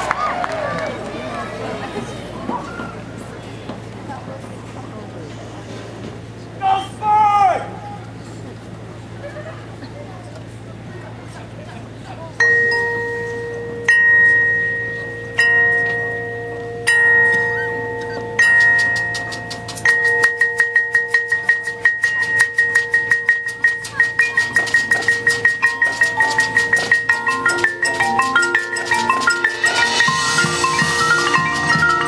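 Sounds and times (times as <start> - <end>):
mallet percussion notes: 12.4 - 32.0.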